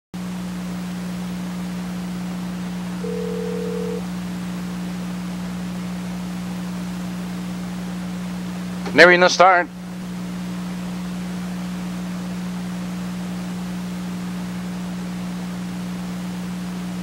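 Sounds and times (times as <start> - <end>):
electrical hum and hiss: 0.2 - 17.0.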